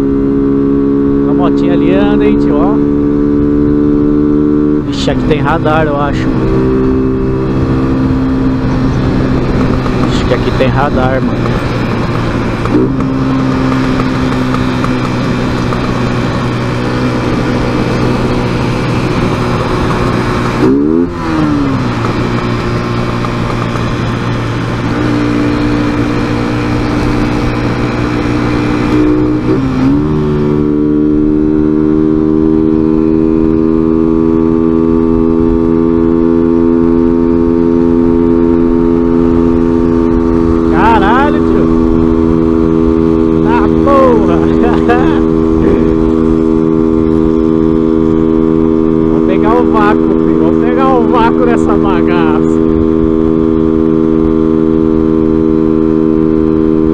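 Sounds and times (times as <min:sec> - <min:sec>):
motorcycle engine running: 0:00.0 - 0:56.9
road and wind noise: 0:00.0 - 0:56.9.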